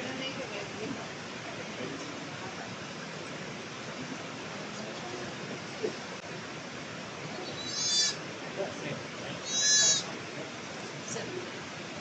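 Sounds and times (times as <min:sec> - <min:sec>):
goat bleating: 0:07.6 - 0:08.2, 0:09.4 - 0:10.1.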